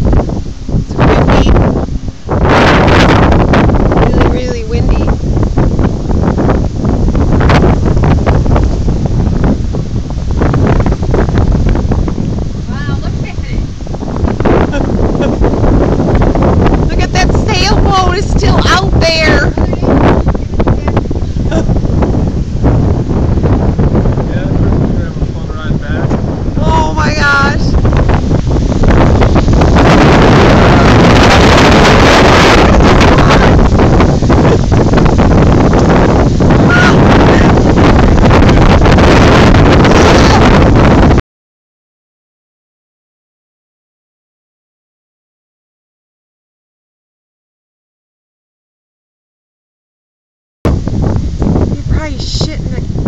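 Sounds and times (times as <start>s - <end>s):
wind gusts on microphone: 0.0s - 41.2s, 50.7s - 53.0s.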